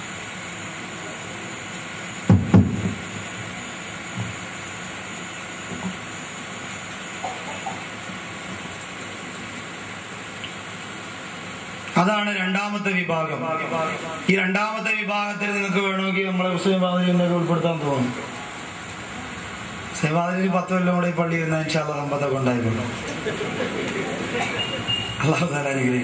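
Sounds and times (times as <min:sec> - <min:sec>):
steady hiss: 0:00.0 - 0:26.0
dull knocks: 0:02.3 - 0:03.0.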